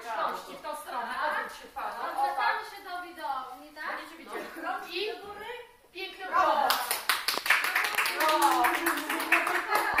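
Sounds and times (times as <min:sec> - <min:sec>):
group clapping: 0:06.4 - 0:10.0.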